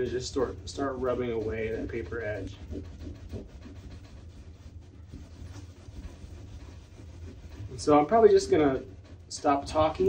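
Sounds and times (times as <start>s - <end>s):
cloth scrubbing paper off panel: 0.0s - 10.0s
steady low hum: 0.0s - 10.0s.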